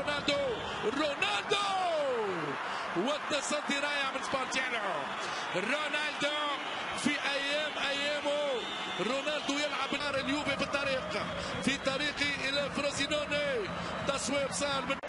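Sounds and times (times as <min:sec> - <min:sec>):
commentator speaking excitedly: 0:00.0 - 0:15.0
stadium crowd noise: 0:00.0 - 0:15.0.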